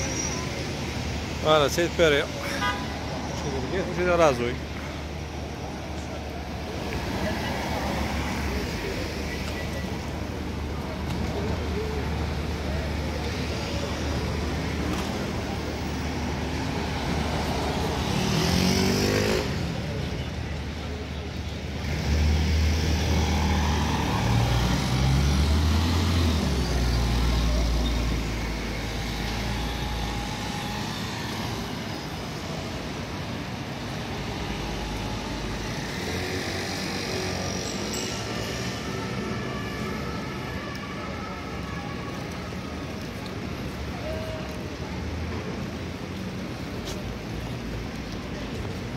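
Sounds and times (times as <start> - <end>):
cars and scooters passing: 0.0 - 48.9
vehicle accelerating: 16.9 - 19.8, 21.8 - 31.8.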